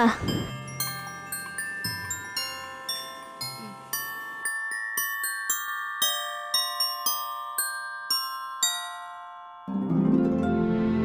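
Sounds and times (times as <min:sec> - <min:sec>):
bell-like mallet melody: 0:00.0 - 0:11.0.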